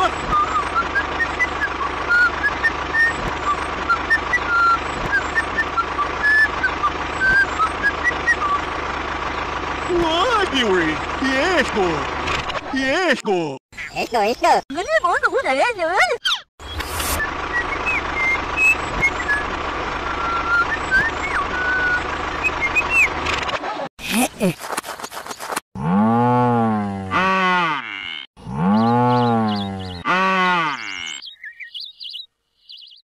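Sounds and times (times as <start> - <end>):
bird-like chirps: 20.1 - 23.4, 28.7 - 30.0, 30.7 - 33.0
cow mooing: 25.8 - 31.2.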